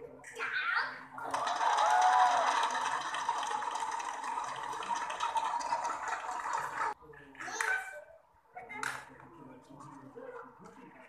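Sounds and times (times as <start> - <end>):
crowd noise in arena: 0.0 - 11.0.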